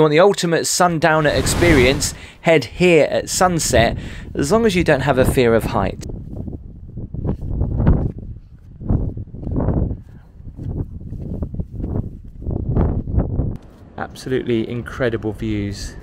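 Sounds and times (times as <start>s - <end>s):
wind buffeting microphone: 1.2s - 13.6s.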